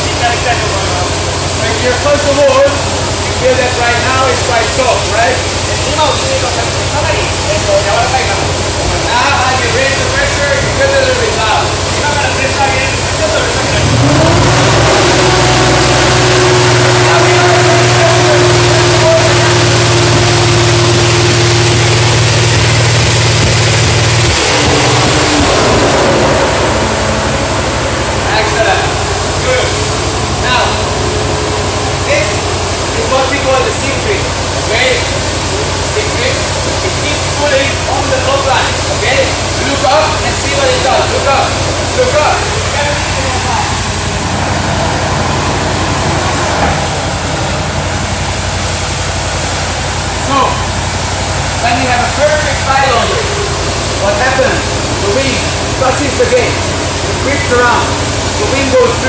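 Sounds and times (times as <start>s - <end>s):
blower fans rushing: 0.0s - 59.0s
deep motor hum spinning up: 0.0s - 59.0s
voices talking: 23.7s - 59.0s.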